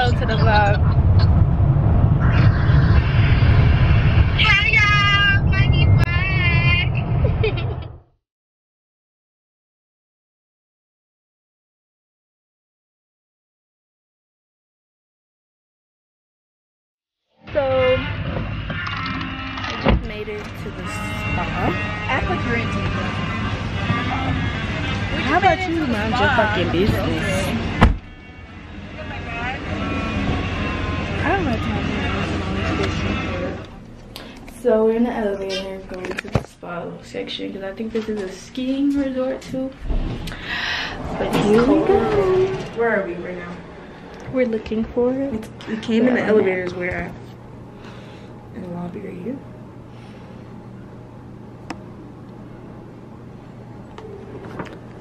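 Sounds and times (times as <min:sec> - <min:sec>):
voices: 0:00.0 - 0:01.3, 0:04.4 - 0:07.0, 0:20.0 - 0:47.2
car cabin road noise: 0:00.0 - 0:07.5, 0:19.8 - 0:36.6
loud thump: 0:27.8 - 0:28.1, 0:39.8 - 0:42.4.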